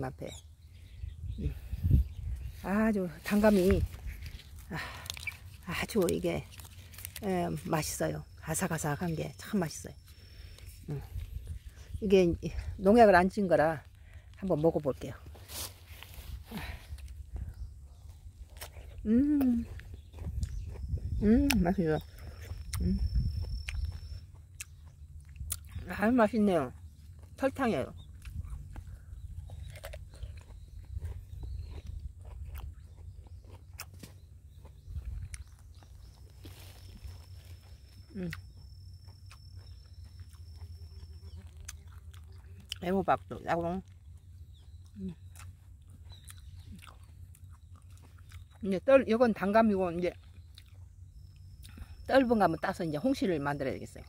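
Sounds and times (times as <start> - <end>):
closed-mouth hum: 0.0 - 54.0
crunchy fruit bite: 0.3 - 54.0
chewing with small clicks: 3.9 - 7.3, 16.9 - 25.8, 26.7 - 48.8, 50.0 - 52.1
low rumble: 7.9 - 33.5.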